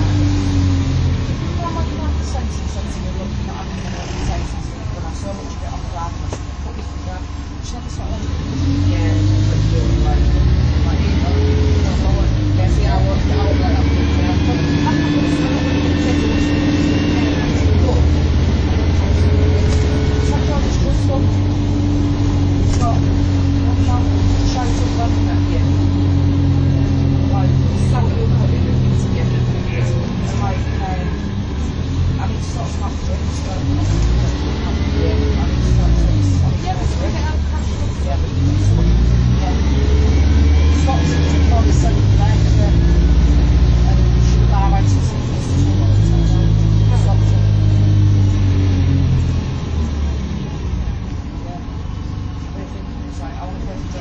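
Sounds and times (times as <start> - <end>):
bus diesel engine: 0.0 - 54.0.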